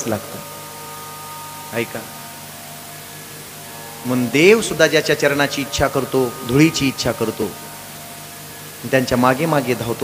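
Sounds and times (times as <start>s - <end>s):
constant hiss: 0.0s - 10.0s
soft drone of held tones: 0.0s - 10.0s.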